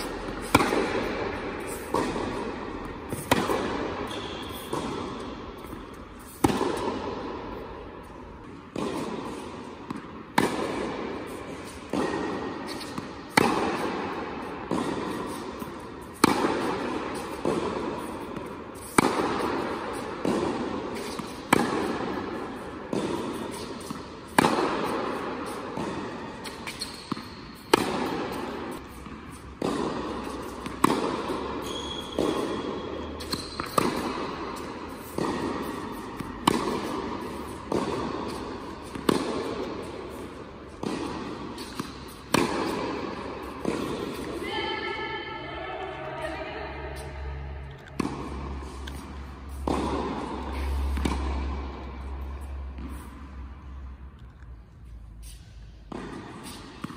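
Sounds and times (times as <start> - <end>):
tennis ball bouncing on hard court: 0.0 - 56.9
tennis ball struck with racquet: 0.0 - 56.9.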